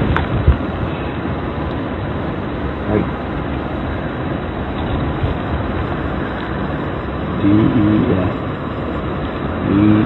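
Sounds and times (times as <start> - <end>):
steady background noise: 0.0 - 10.0
man saying letters: 2.8 - 3.1, 7.4 - 8.4, 9.6 - 10.0.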